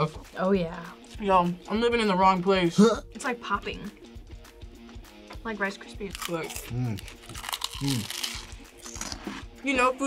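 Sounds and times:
background music: 0.0 - 10.0
crunchy food bite: 6.0 - 9.5.

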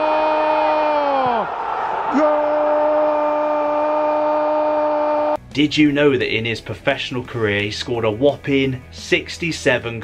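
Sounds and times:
crowd noise: 1.3 - 2.3.

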